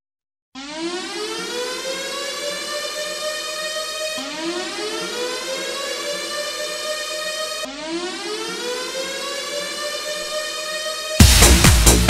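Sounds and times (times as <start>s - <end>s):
siren-like rising synth wail: 0.6s - 12.0s.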